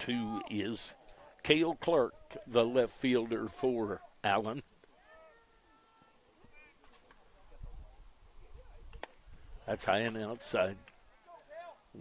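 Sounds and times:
distant high-pitched shouted call: 5.0 - 6.8.

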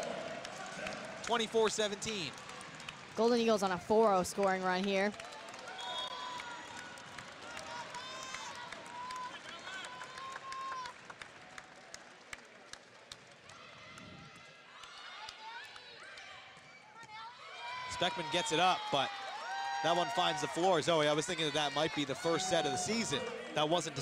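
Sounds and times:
distant voices of players and crowd: 0.0 - 24.0.

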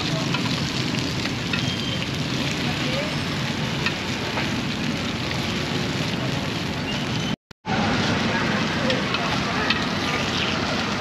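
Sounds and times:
charcoal fire hissing and crackling: 0.0 - 11.0.

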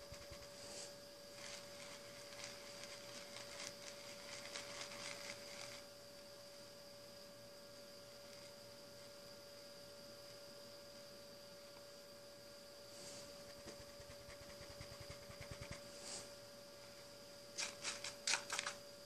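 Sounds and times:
faint electrical hum: 0.0 - 19.0
soft hissing swish: 0.4 - 1.0, 12.9 - 14.4, 15.2 - 16.4.

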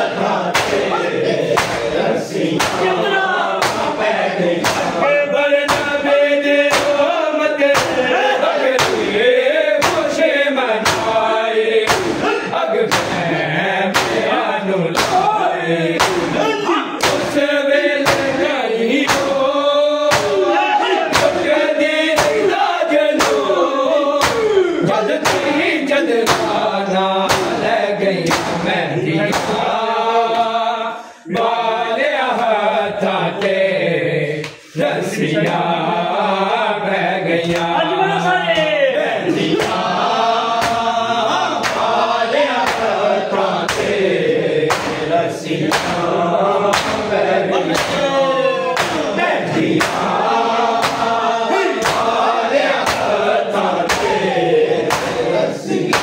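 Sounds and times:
men chanting together: 0.0 - 56.0
hands slapping chests: 0.5 - 2.0, 2.6 - 3.0, 3.6 - 5.1, 5.7 - 6.1, 6.7 - 8.1, 8.7 - 9.2, 9.8 - 10.2, 10.8 - 13.3, 13.9 - 15.4, 16.0 - 19.5, 20.1 - 22.6, 23.2 - 23.5, 24.2 - 24.6, 25.2 - 25.6, 26.2 - 26.7, 27.3 - 28.7, 29.3 - 29.7, 34.4 - 34.8, 37.4 - 37.8, 39.4 - 44.0, 44.7 - 46.1, 46.7 - 56.0.

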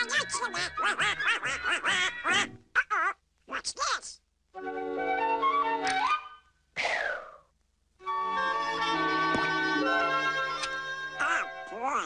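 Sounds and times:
cartoon duck quacking voice: 0.0 - 4.2, 11.2 - 12.0.

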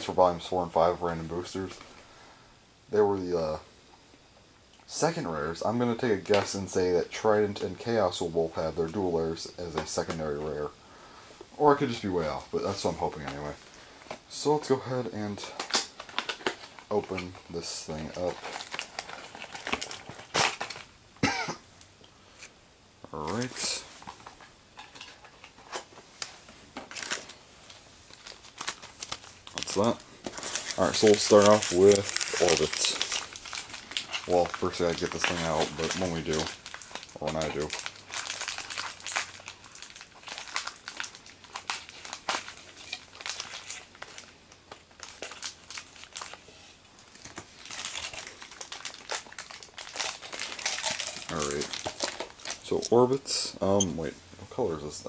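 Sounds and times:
cardboard and plastic rustling: 5.8 - 10.7, 11.4 - 20.9, 23.2 - 54.2
plastic packaging crinkling: 11.5 - 21.0, 23.2 - 54.1.

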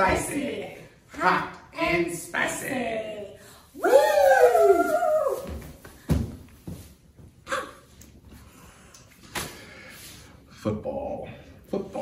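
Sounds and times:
person shouting woo: 3.8 - 5.6
feet landing on floor: 5.4 - 7.3.

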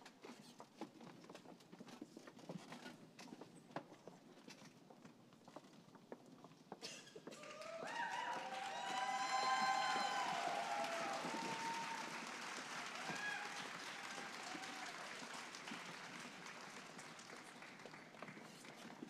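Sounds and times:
audience applause: 7.3 - 19.0
whoops and cheers: 7.4 - 15.4.

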